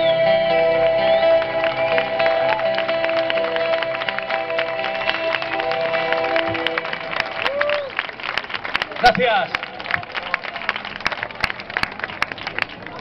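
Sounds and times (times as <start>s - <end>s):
audience applause: 1.4s - 13.0s.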